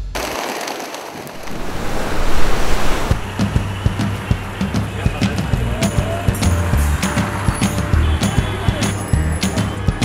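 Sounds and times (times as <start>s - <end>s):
rushing surf-like noise: 0.3s - 4.2s
low beat: 3.1s - 4.7s.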